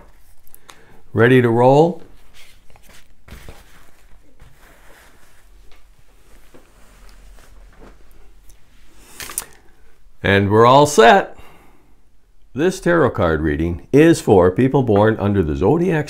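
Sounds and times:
cloth rustling: 1.9s - 9.8s.

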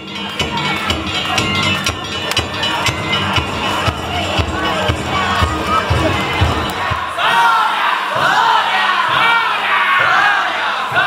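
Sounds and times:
crowd shouting a chant: 0.0s - 11.0s.

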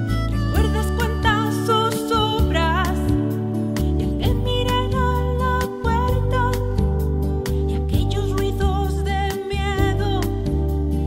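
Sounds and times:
music with a steady beat: 0.0s - 11.0s.

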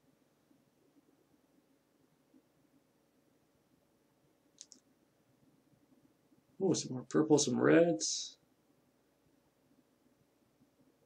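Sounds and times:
faint clicks: 4.6s - 4.9s.

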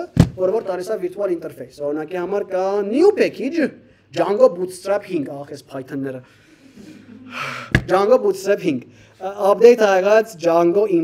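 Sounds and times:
man speaking: 0.0s - 6.3s, 7.8s - 11.0s
man's sharp intake of breath: 6.2s - 7.9s.

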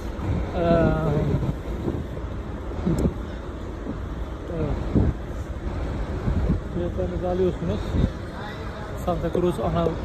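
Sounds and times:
rumble of buses and traffic: 0.0s - 10.0s.

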